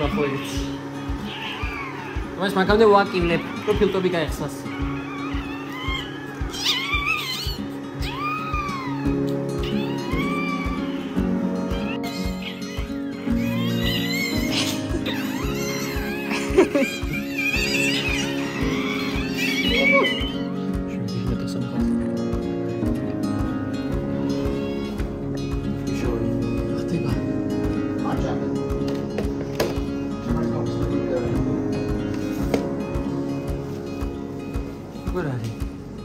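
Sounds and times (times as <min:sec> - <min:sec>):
puppy squealing: 0:00.0 - 0:21.0, 0:24.1 - 0:25.4
background music with steady beat: 0:00.0 - 0:36.0.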